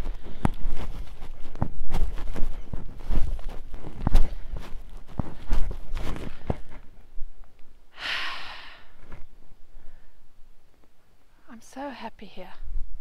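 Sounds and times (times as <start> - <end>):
footsteps on dirt and grass: 0.0 - 7.7
person sighing: 7.9 - 9.0.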